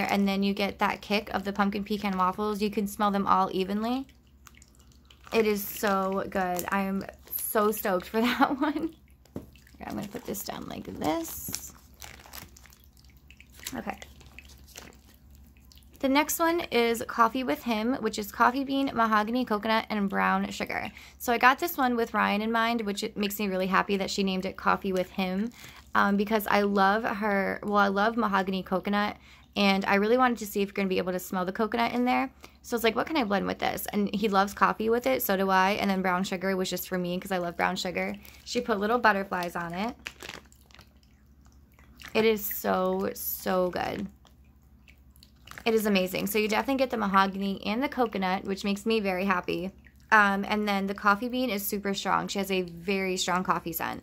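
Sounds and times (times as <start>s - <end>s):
low steady hum: 0.0s - 54.0s
soft water drips: 0.0s - 54.0s
water fountain trickling: 0.0s - 54.0s
packaging crinkling: 4.4s - 8.2s, 9.2s - 15.9s, 38.2s - 42.2s, 45.2s - 45.8s.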